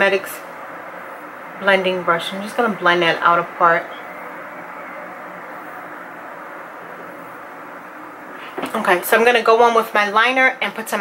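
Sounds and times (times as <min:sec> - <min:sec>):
faint steady tones: 0:00.0 - 0:11.0
steady background hum: 0:00.0 - 0:11.0.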